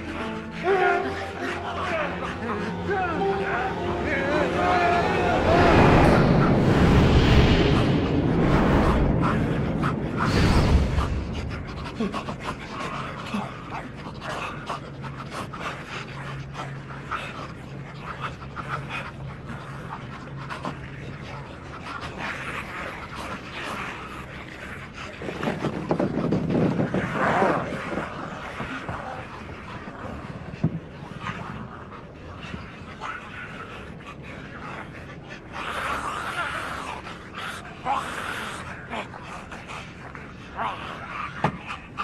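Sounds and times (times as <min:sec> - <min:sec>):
rasping breathing and growls: 0:00.0 - 0:42.0.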